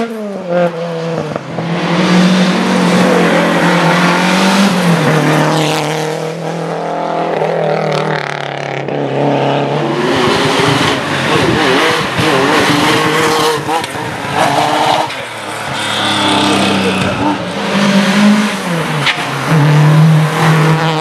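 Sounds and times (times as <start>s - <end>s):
car engine revving through bend: 0.0s - 21.0s
rally car passing: 0.0s - 21.0s.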